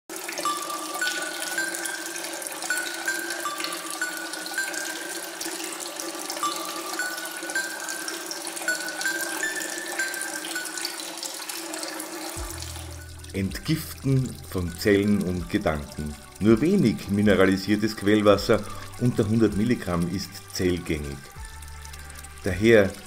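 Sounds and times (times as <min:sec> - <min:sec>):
water flowing: 0:00.1 - 0:23.0.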